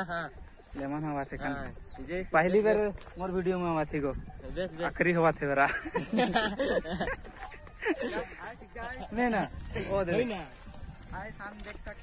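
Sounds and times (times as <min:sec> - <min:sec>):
high-pitched insect drone: 0:00.0 - 0:12.0
people talking: 0:00.0 - 0:12.0
people laughing: 0:05.5 - 0:10.4.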